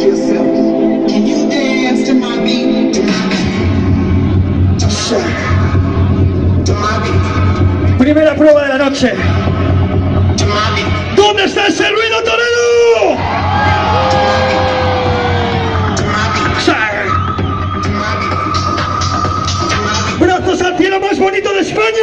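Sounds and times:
crowd shouting and whooping: 12.9 - 18.0
dance music with bass beat: 13.6 - 20.2.

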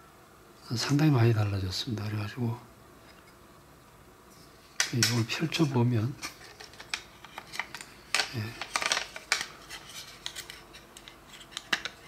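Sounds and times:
person speaking: 4.8 - 6.4, 8.0 - 9.0.

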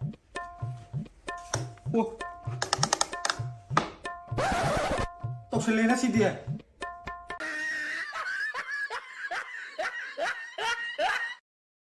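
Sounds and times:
person laughing in bursts: 7.4 - 11.4.

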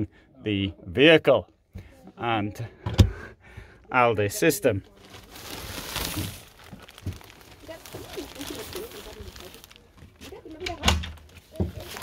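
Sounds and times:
faint voices: 4.8 - 12.0
plastic sheeting crinkling: 4.8 - 12.0.

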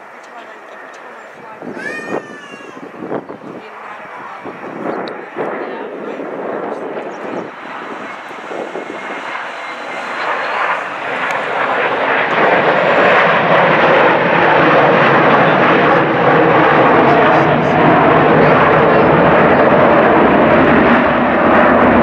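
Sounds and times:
jet engines roaring: 0.0 - 22.0.

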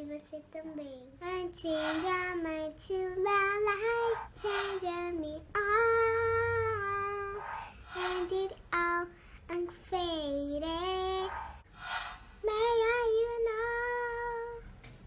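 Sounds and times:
girl singing unaccompanied: 0.0 - 11.6, 12.4 - 14.8.

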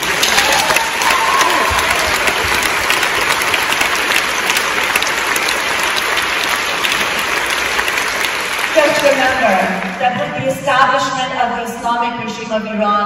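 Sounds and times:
large audience applauding: 0.0 - 10.0.

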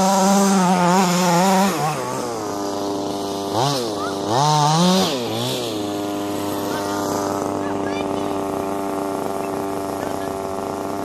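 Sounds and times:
rc car engine running: 0.0 - 11.0.

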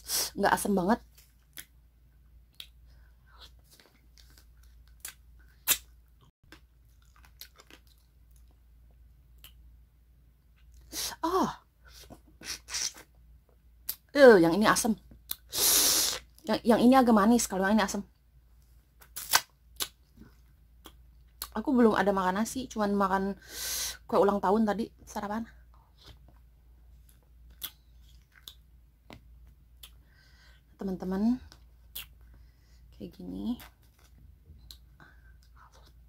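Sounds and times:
crunchy chewing: 2.5 - 8.6
wet eating mouth sounds: 27.0 - 29.2.

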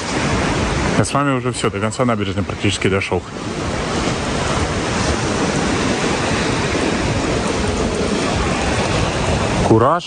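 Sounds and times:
sea surf rushing: 0.0 - 10.0
wind buffeting microphone: 0.0 - 10.0.

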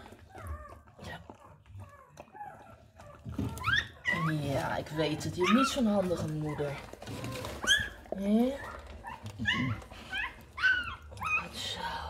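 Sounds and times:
puppy squeaking: 0.2 - 11.6.

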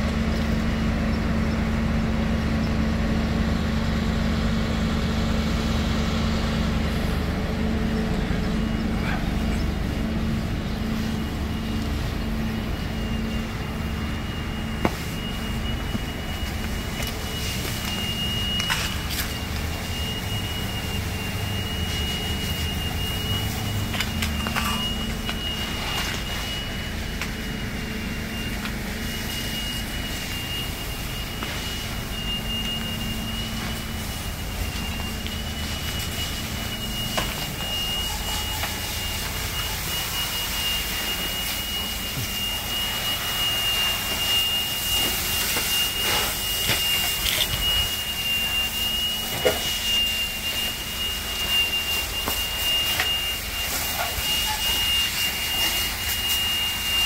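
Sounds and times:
low steady rumble: 0.0 - 45.4
steady high-pitched tone: 0.0 - 57.0.

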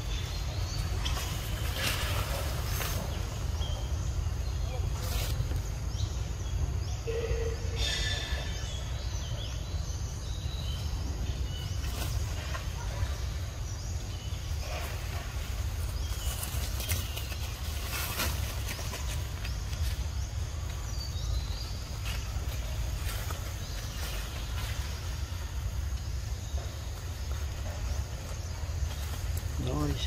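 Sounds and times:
leaves and twigs rustling: 0.0 - 7.0, 8.0 - 30.0.

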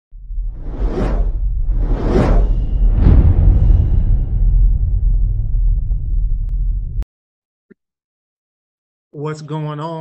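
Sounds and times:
deep steady rumble: 0.2 - 7.0
whoosh sound effects: 0.5 - 4.2.

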